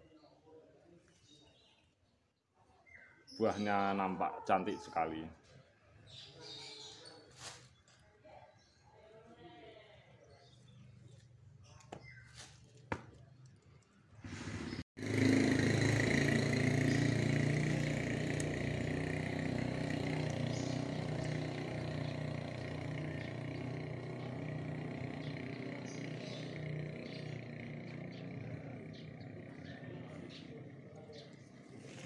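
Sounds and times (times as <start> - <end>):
motor engine running: 14.3 - 32.0.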